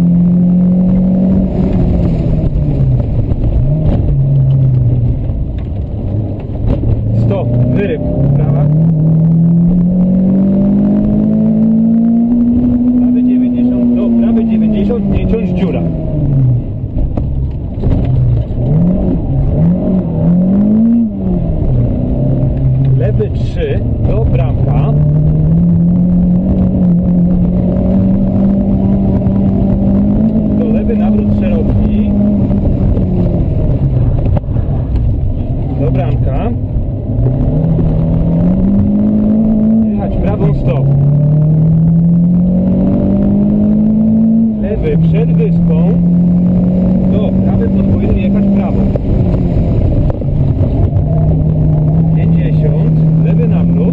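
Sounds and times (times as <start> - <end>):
rally car engine revving: 0.0 - 53.9.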